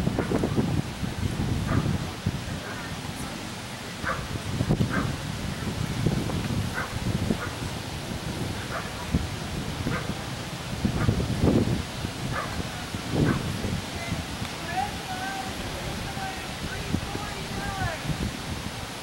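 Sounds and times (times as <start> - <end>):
dog barking: 1.7 - 1.9, 4.0 - 4.3, 4.9 - 5.1, 6.7 - 7.6, 8.7 - 9.0, 9.9 - 10.1, 12.3 - 12.6, 13.2 - 13.4.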